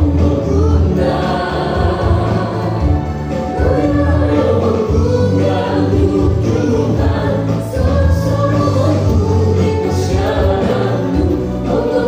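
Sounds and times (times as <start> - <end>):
choir singing held notes: 0.0 - 12.0
steady bass line: 0.0 - 12.0.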